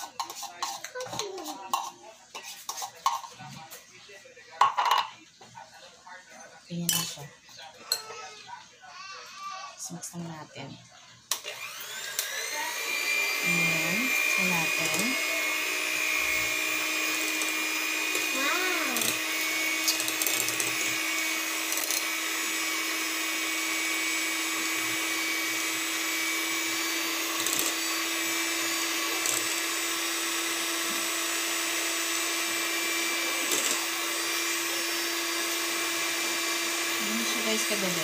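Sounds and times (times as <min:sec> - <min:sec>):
electric hand mixer whine: 0:11.3 - 0:38.0.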